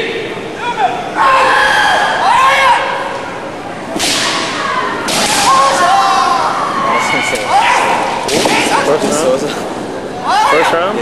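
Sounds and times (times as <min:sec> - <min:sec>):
fencers shouting: 0:00.6 - 0:03.4, 0:04.0 - 0:09.2
bamboo sword strikes: 0:04.0 - 0:04.5.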